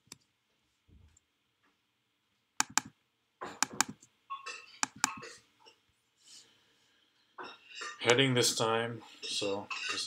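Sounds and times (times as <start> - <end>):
computer mouse double-clicks: 2.6 - 2.9, 3.6 - 4.1, 4.8 - 5.2.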